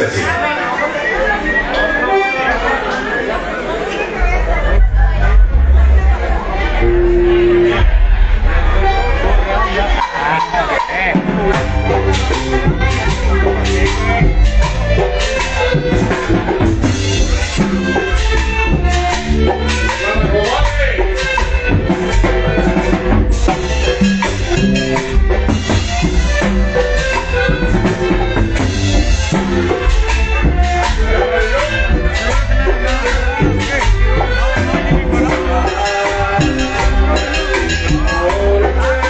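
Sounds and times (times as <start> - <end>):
crowd chatter: 0.0 - 39.0
live cumbia band playing: 0.0 - 39.0
heavy bass: 4.1 - 39.0
drum kit and cymbals: 4.3 - 39.0
reedy held note: 6.7 - 10.6.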